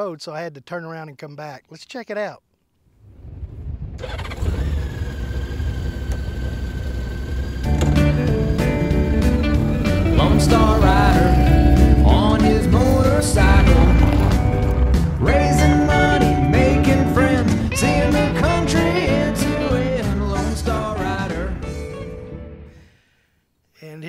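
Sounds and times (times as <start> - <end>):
motorcycle engine running: 4.0 - 18.4
country song with singing: 7.8 - 22.4.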